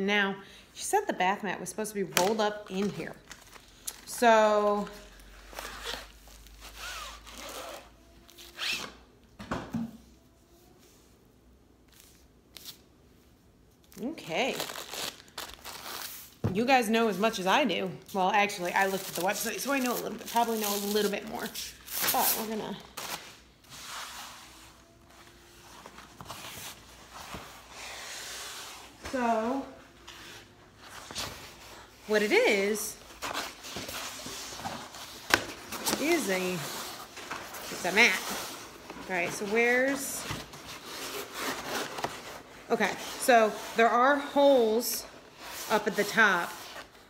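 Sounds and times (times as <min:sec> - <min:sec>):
plastic sheet rustling: 0:18.5 - 0:47.0.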